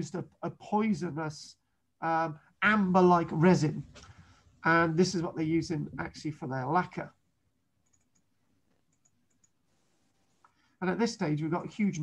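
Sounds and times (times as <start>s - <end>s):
faint computer mouse clicks: 7.8s - 9.6s.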